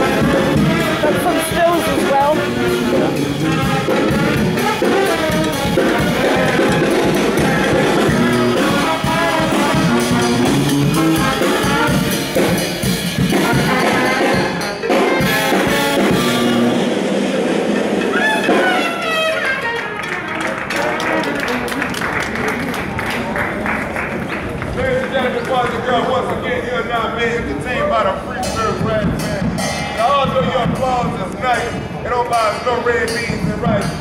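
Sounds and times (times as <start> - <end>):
voices: 0.0 - 10.4, 20.6 - 34.0
brass band playing jazz: 0.0 - 24.7, 27.0 - 34.0.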